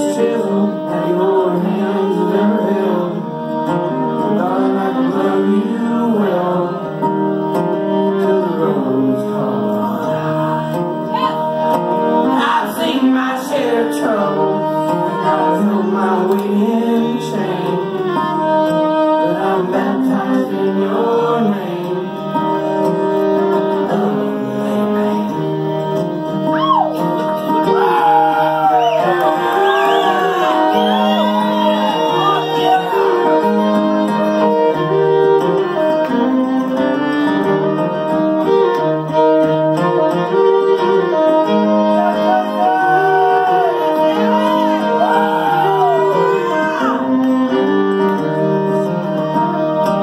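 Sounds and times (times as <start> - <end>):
wordless singing: 0.0 - 3.2, 19.2 - 22.1
acoustic guitar: 0.0 - 50.0
country band playing: 0.0 - 50.0
fiddle bowing long notes: 0.0 - 50.0.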